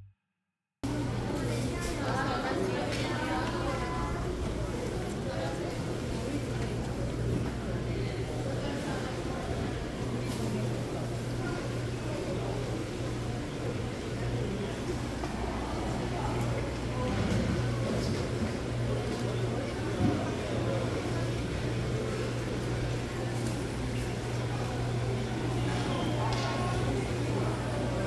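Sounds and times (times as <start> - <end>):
indistinct chatter: 0.8 - 28.0.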